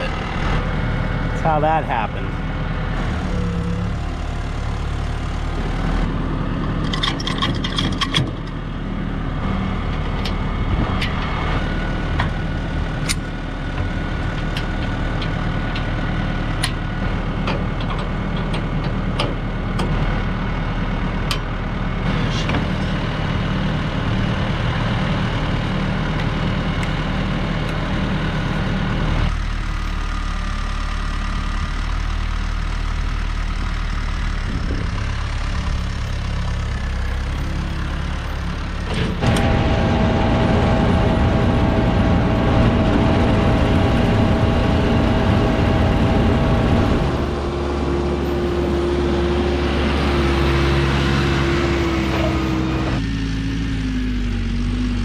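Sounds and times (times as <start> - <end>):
tractor diesel engine idling: 0.0 - 55.0
metallic clanks and clicks: 6.8 - 8.6.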